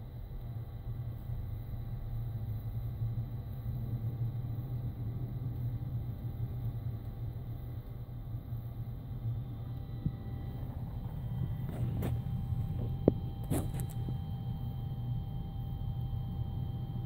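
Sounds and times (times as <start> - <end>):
truck engine running: 9.5 - 14.1.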